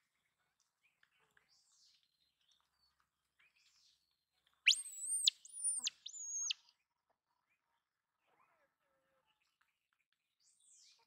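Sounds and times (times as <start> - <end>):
high-pitched whistled calls: 4.7 - 6.6.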